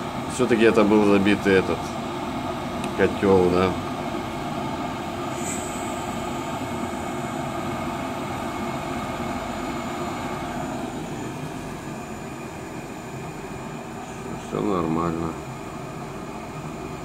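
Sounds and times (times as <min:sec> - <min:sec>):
gas boiler burner roaring: 0:00.0 - 0:17.0.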